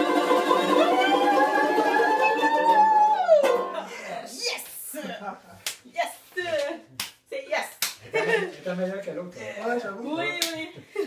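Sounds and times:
excited voices: 0.0s - 5.2s.

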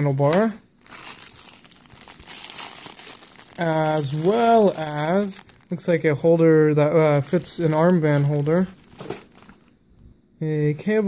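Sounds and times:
plastic bag crinkling: 0.0s - 9.8s.

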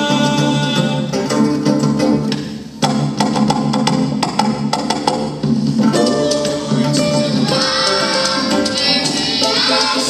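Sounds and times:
plucked strings and bass: 0.0s - 10.0s
hand percussion strikes: 1.6s - 10.0s.

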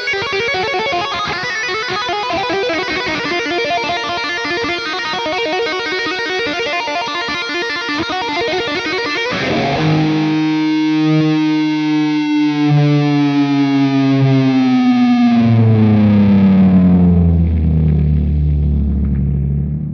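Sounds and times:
distorted electric guitar note sliding: 0.0s - 19.9s
deep low guitar notes: 9.2s - 19.9s.

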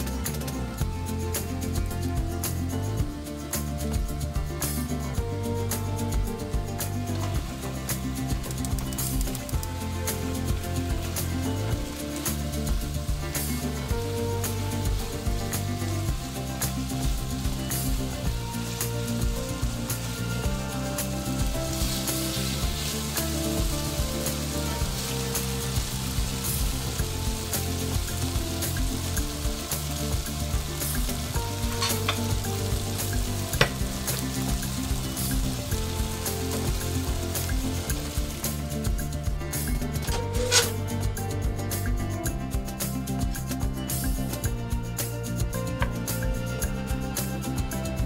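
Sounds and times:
chicken sizzling in a frying pan: 7.2s - 40.8s.

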